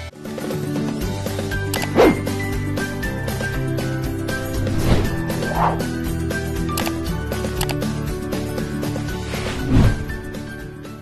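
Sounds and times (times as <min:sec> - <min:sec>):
bark-like sound effect: 0:05.5 - 0:05.9.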